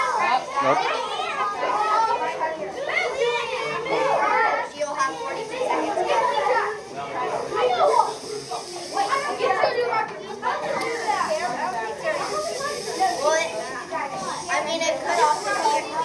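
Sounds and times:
children talking and calling out: 0.0 - 16.0.

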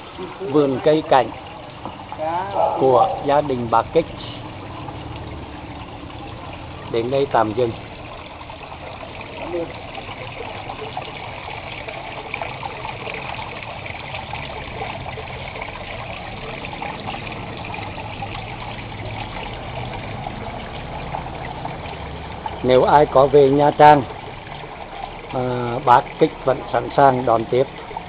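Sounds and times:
fountain water trickling and splashing: 0.0 - 28.0.

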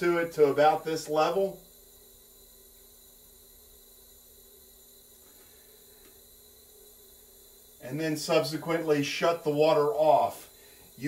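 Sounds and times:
light hiss: 0.0 - 11.0.

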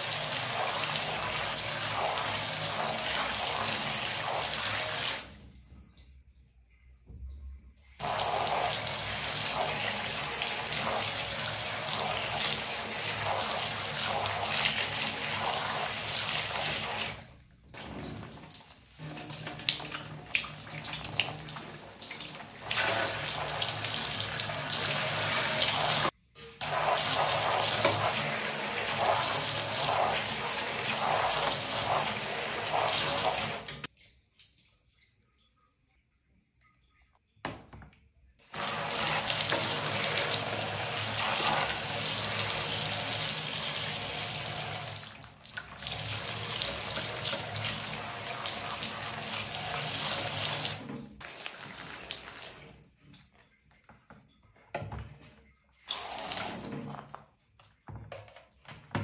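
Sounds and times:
water splashing and dripping: 0.0 - 36.2, 37.6 - 59.0.

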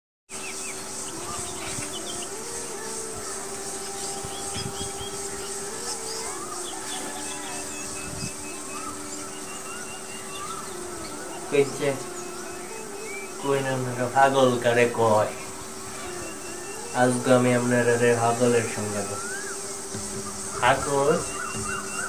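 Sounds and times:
birds chirping: 0.3 - 22.0
insect drone: 0.3 - 22.0
soft slow melody: 1.0 - 22.0.

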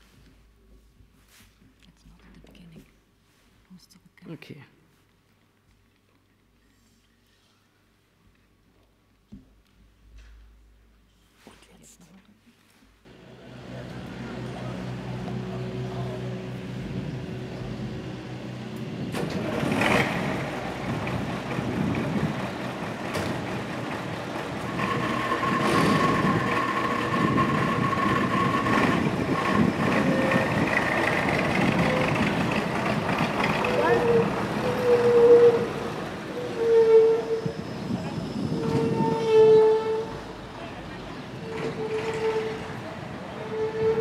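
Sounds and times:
dump truck engine running: 13.1 - 36.6
truck pulling away: 13.1 - 36.7.

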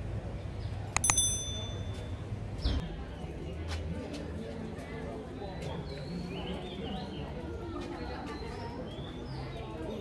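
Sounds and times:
notification bell ding: 1.0 - 2.2.

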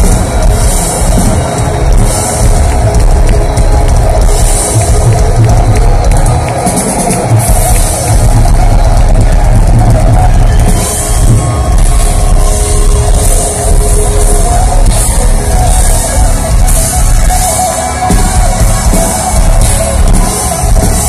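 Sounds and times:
metal band playing live: 0.0 - 21.0.

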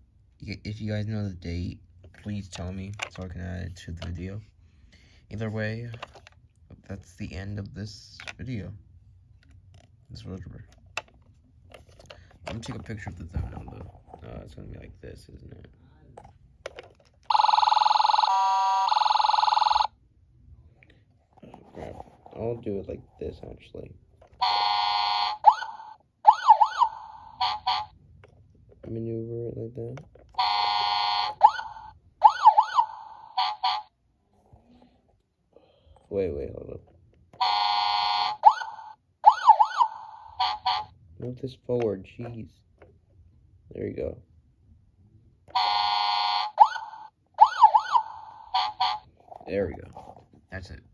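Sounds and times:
toy fire truck siren: 17.3 - 19.9, 24.4 - 28.0, 30.4 - 33.9, 37.4 - 41.0, 45.5 - 49.1
toy horn blasts: 24.4 - 25.4, 27.4 - 27.9, 30.4 - 31.5, 37.4 - 38.4, 40.4 - 40.9, 45.5 - 46.6, 48.5 - 49.0.

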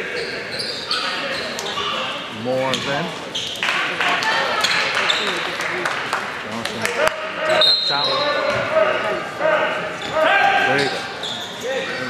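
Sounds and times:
crowd chatter and shouts: 0.0 - 12.0.

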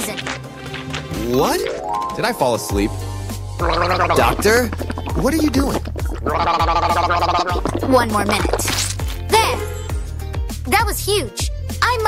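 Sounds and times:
background music with bass line: 0.4 - 12.0
woman gargling: 3.6 - 8.2.

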